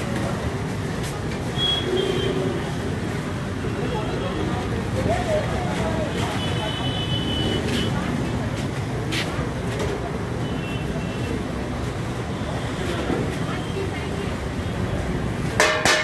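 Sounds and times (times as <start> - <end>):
traffic rumble: 0.0 - 16.0.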